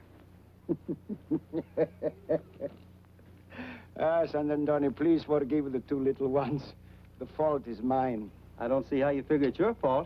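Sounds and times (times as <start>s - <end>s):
man laughing: 0.7s - 2.8s.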